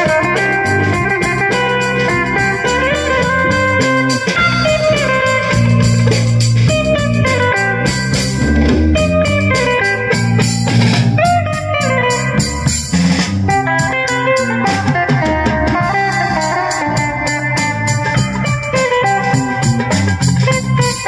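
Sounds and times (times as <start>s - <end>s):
drum kit beat: 0.0s - 21.0s
electric guitar melody: 0.0s - 21.0s
low bass line: 0.0s - 21.0s.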